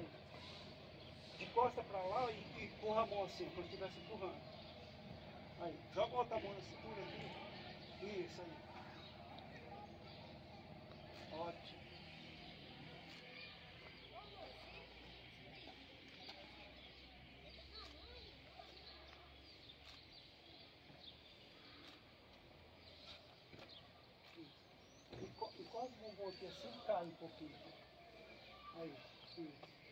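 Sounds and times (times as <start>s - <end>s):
distant voices: 0.0s - 29.9s.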